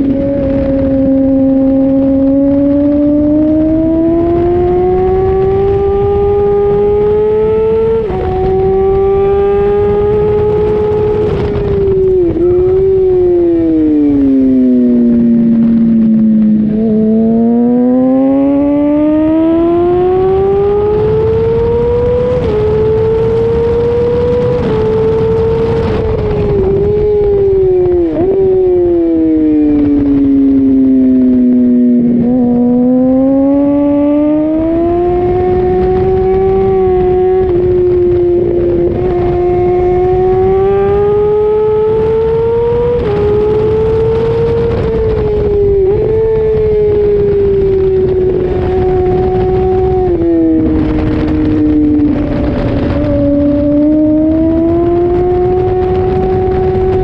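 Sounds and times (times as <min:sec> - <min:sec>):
motorcycle engine revving: 0:00.0 - 0:57.0
wind rush on microphone: 0:00.0 - 0:57.0.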